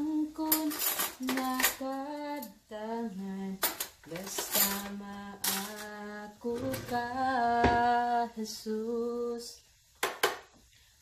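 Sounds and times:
woman singing slow song: 0.0s - 9.7s
kitchenware clinks: 0.5s - 1.8s, 3.6s - 5.8s.

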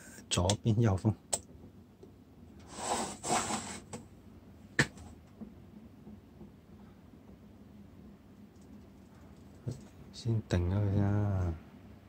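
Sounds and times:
desk fan clicking: 0.2s - 2.7s, 4.8s - 11.1s
plastic scraping on metal: 2.6s - 4.0s.

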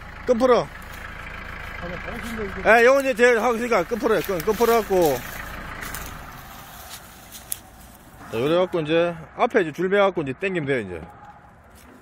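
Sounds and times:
tractor engine running: 0.0s - 12.0s
man's voice: 1.8s - 5.3s.

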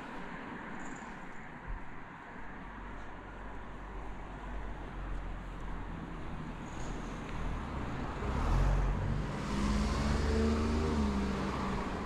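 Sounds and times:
vehicle driving past: 8.0s - 12.0s.

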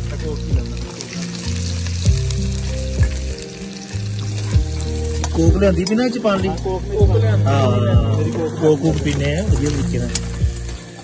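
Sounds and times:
food sizzling in a pan: 0.0s - 11.0s
music with deep bass line: 0.0s - 11.0s
person speaking: 5.3s - 10.1s.

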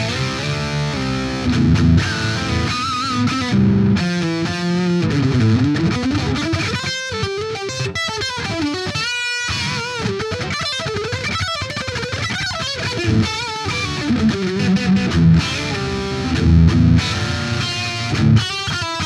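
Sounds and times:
distorted electric guitar lead: 0.0s - 19.0s.

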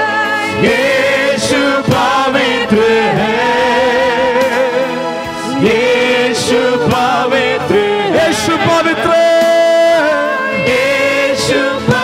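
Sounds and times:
women singing together: 0.0s - 9.2s, 9.9s - 12.0s.

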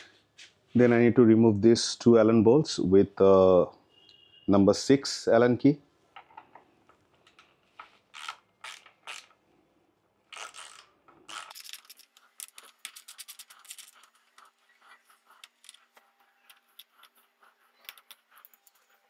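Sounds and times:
ratchet handle scraping: 8.1s - 9.4s, 10.3s - 19.0s
rapid ratchet clicks: 8.2s - 9.3s, 10.3s - 14.0s.

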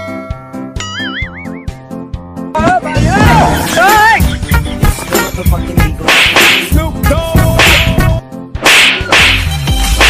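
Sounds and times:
background music: 0.0s - 10.0s
whip-crack and slap effects: 6.0s - 6.8s, 7.5s - 10.0s.

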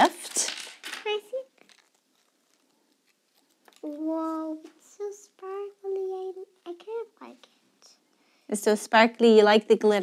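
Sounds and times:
tissue paper rustling: 1.3s - 4.6s.

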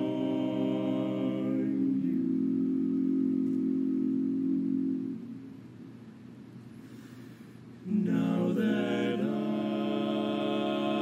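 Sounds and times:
male voices singing a low chord: 0.0s - 5.2s, 7.8s - 11.0s.

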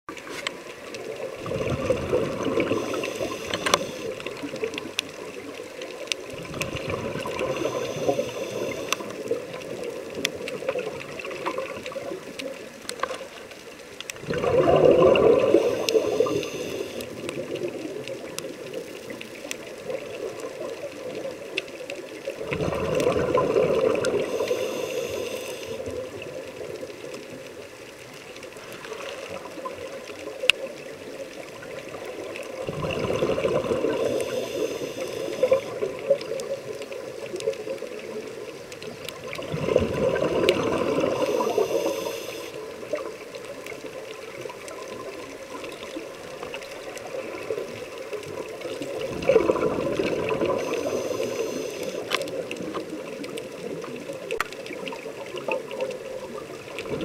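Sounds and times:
quiet regulator hiss: 0.2s - 56.9s
scuba regulator bubbles exhaling: 1.0s - 5.4s, 6.2s - 12.4s, 14.2s - 18.8s, 22.2s - 26.8s, 31.6s - 38.1s, 39.1s - 43.3s, 44.2s - 57.0s.

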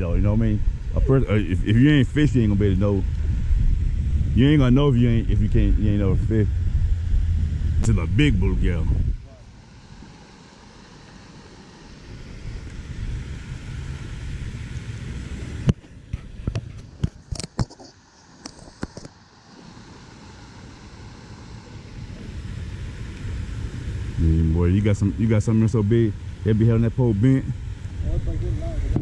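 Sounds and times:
wind buffeting microphone: 0.0s - 9.5s.

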